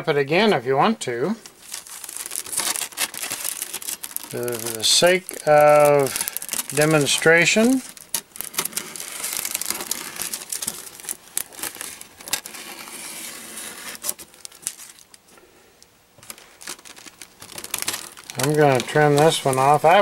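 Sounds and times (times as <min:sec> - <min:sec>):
plastic film rustling: 0:00.4 - 0:20.0.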